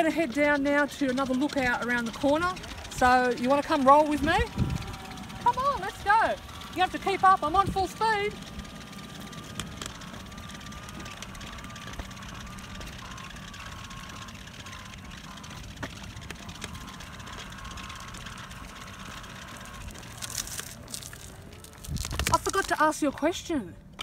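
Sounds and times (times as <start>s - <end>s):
electric wheelchair motors whining: 0.0s - 24.0s
outdoor noise: 0.0s - 24.0s
tyres rumbling on asphalt: 0.0s - 24.0s.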